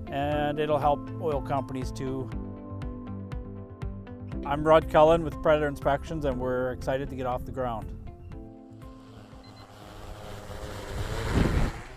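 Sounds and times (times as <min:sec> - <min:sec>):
drone rotors humming: 0:08.4 - 0:11.9
propellers rushing: 0:08.7 - 0:11.9.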